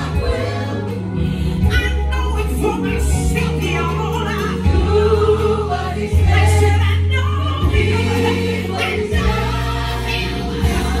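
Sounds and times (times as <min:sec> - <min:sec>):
band accompaniment: 0:00.0 - 0:11.0
gospel choir singing: 0:00.0 - 0:11.0.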